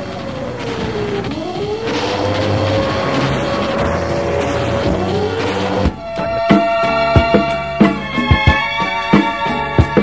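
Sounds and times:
vehicle engine accelerating: 0.0 - 6.1.

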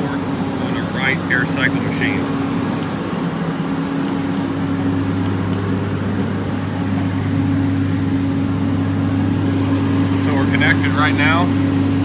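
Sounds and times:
ground power cart engine running: 0.0 - 12.0.

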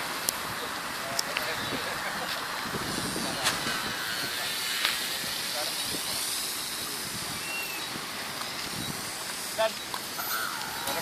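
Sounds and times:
steady background hiss: 0.0 - 11.0
rc plane motor whining: 2.6 - 11.0.

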